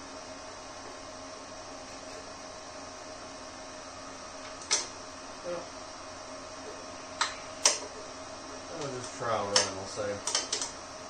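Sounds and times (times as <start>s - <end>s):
faint shop hum: 0.0s - 11.0s.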